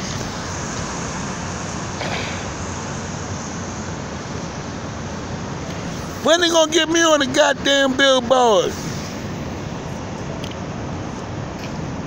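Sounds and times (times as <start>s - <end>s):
city street traffic hiss: 0.0s - 12.0s.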